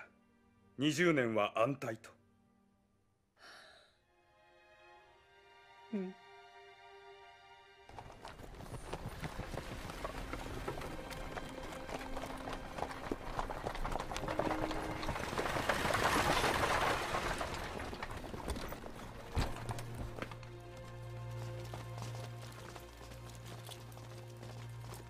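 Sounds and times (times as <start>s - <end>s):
carriage rolling over dirt: 7.9s - 25.0s
horse hooves clopping: 7.9s - 25.0s.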